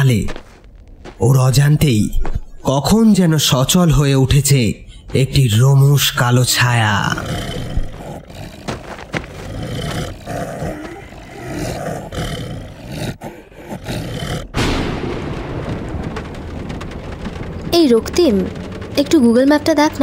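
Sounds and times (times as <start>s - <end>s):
monster growling and roaring: 6.7s - 14.9s
steady rain-like hiss: 13.7s - 20.0s.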